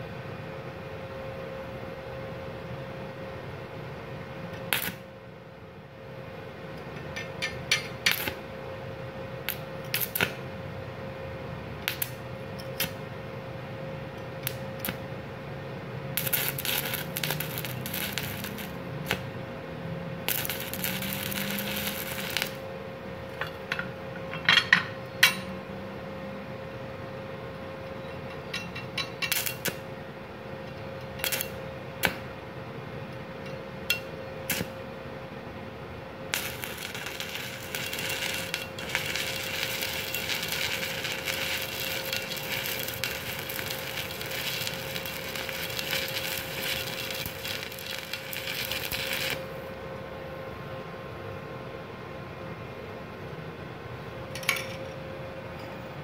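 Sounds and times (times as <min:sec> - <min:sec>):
steady high hum: 0:00.0 - 0:56.0
welding arc crackling: 0:04.7 - 0:05.0, 0:08.0 - 0:08.5, 0:09.4 - 0:10.4, 0:11.8 - 0:13.0, 0:14.4 - 0:15.1, 0:16.1 - 0:19.4, 0:20.2 - 0:22.6, 0:29.3 - 0:29.8, 0:31.2 - 0:32.2, 0:34.5 - 0:34.8, 0:36.3 - 0:49.7.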